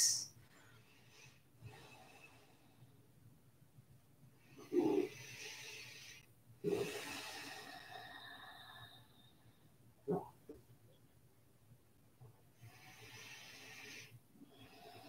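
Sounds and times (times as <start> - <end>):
person breathing slowly: 4.4 - 9.8, 12.6 - 15.0.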